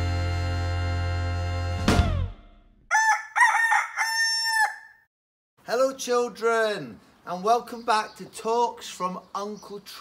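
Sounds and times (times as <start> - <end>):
rooster crowing: 2.9 - 5.1.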